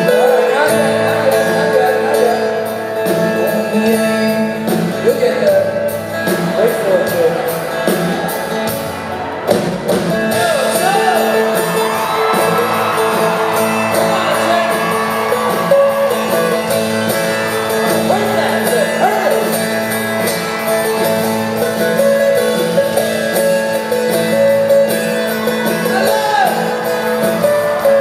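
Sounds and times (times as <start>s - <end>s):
acoustic guitars strumming: 0.0s - 28.0s
live rock band: 0.0s - 28.0s.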